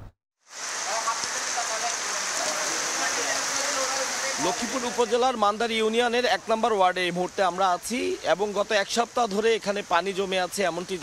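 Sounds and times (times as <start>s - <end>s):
heavy rain pouring onto water: 0.4s - 11.0s.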